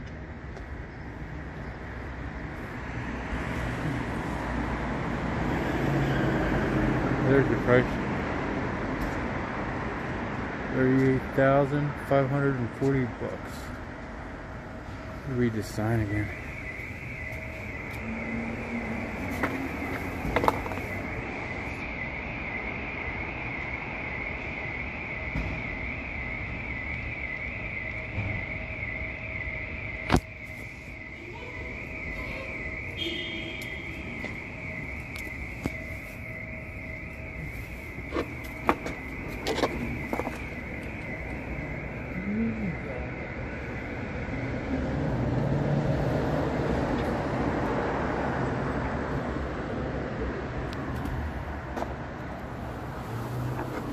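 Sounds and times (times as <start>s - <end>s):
steady background noise: 0.0s - 53.9s.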